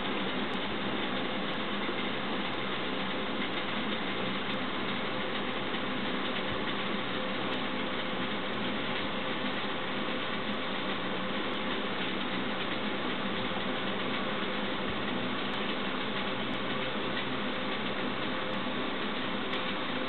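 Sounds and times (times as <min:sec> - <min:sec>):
steady hum and hiss: 0:00.0 - 0:20.0.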